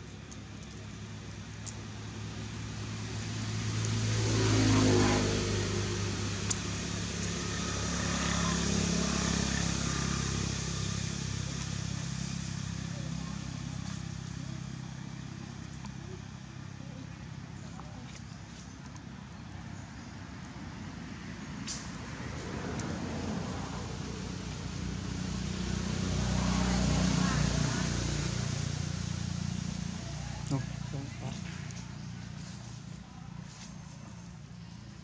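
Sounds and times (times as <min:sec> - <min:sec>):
motor vehicle passing: 0:00.0 - 0:35.0.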